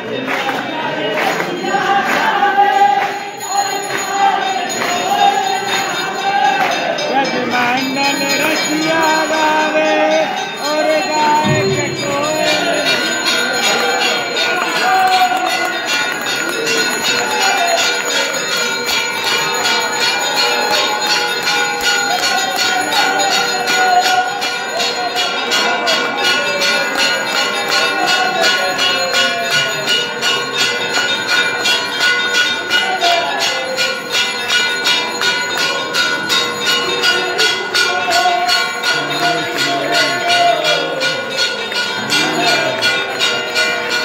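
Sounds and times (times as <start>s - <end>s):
crowd voices: 0.0s - 44.0s
temple bells ringing: 1.1s - 44.0s.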